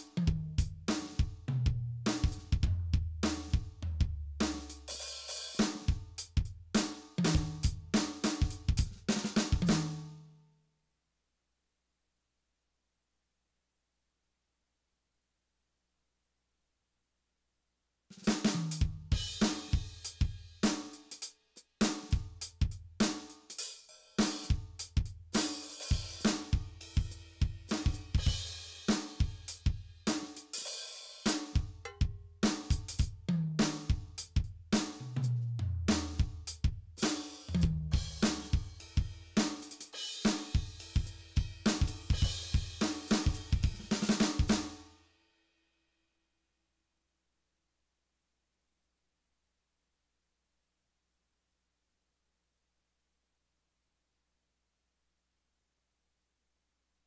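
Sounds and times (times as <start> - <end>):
electronic drum kit groove: 0.0 - 10.1, 18.1 - 44.9.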